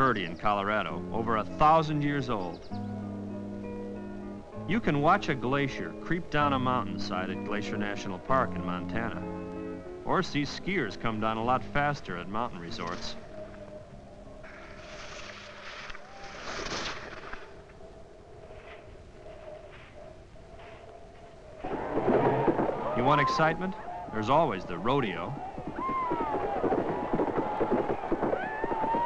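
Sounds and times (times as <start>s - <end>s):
skis swishing across snow: 14.5s - 17.6s
horse hoofbeats on dirt: 21.6s - 29.0s.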